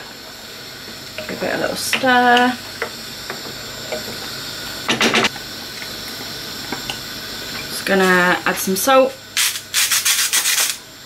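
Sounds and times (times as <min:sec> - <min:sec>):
pans simmering and bubbling: 0:00.0 - 0:08.5.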